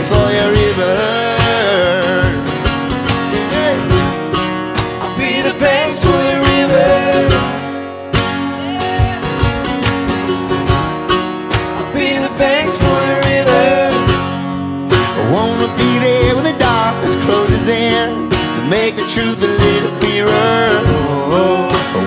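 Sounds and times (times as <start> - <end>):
voices singing in harmony: 0.0 - 2.4, 4.8 - 7.9, 11.6 - 14.6, 18.6 - 22.0
mandolin: 0.0 - 22.0
strummed acoustic guitars: 0.0 - 22.0.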